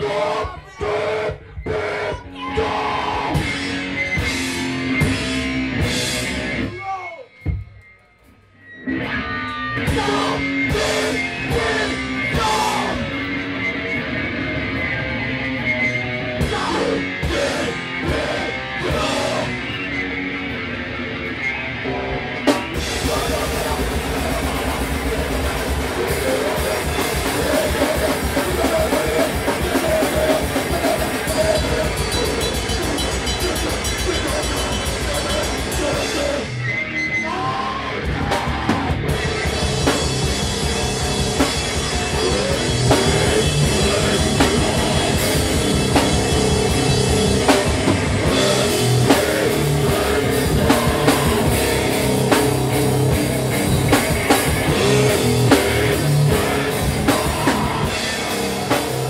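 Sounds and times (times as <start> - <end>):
drum kit: 0.0 - 9.0, 9.8 - 15.0, 15.7 - 20.7, 22.2 - 36.7, 37.9 - 59.0
electric guitar: 2.4 - 6.7, 8.6 - 59.0.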